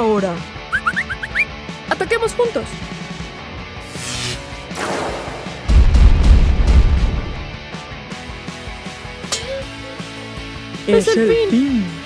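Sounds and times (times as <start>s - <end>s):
background music: 0.0s - 12.0s
crackling electric zap: 3.9s - 5.7s
deep boom: 4.8s - 7.6s.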